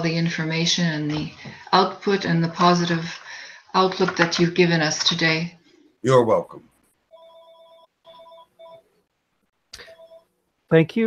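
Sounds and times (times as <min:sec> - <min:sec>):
faint electronic ringtone: 0:07.1 - 0:08.9, 0:09.8 - 0:10.3.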